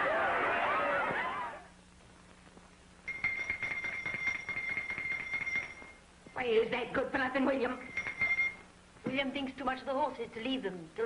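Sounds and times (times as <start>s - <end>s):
high steady tone: 3.0s - 6.8s, 7.4s - 8.8s
woman speaking: 6.4s - 7.9s, 9.0s - 11.0s.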